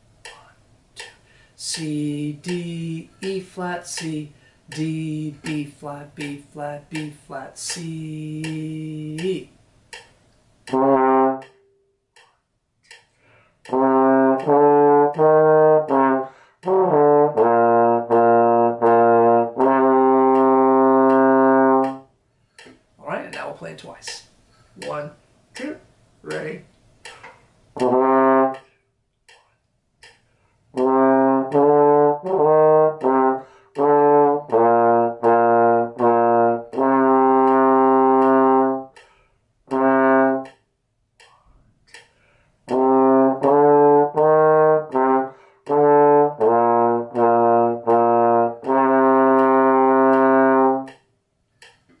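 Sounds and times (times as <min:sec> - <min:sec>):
metronome ticking: 0:00.0 - 0:52.0
trombone playing detached notes: 0:10.7 - 0:11.7, 0:13.7 - 0:22.1, 0:27.8 - 0:28.7, 0:30.8 - 0:39.0, 0:39.7 - 0:40.6, 0:42.7 - 0:51.0.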